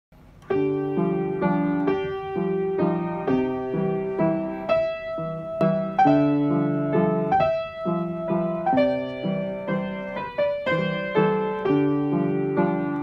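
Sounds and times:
piano waltz: 0:00.2 - 0:13.0.

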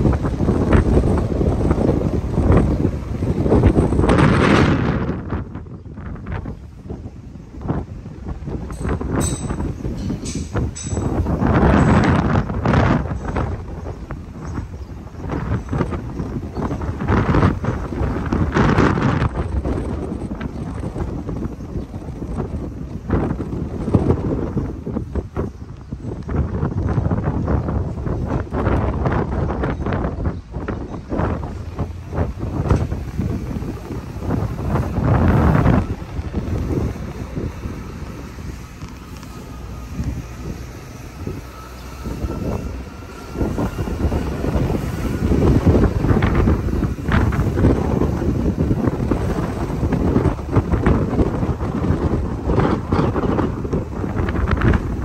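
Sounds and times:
car tyre noise on road: 0:00.0 - 0:55.0
wind buffeting microphone: 0:00.0 - 0:55.0.

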